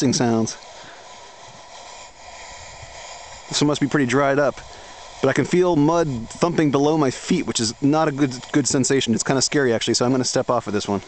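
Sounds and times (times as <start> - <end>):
steam hissing from mud volcano: 0.0 - 11.0.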